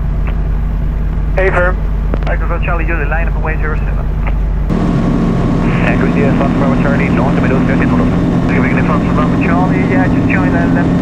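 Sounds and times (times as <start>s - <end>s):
light aircraft engine droning: 0.0s - 11.0s.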